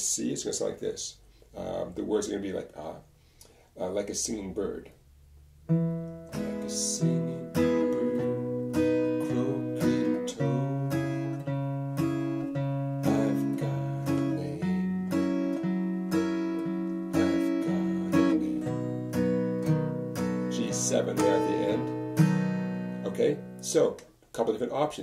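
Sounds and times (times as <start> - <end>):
acoustic guitar strumming: 5.6 - 24.0.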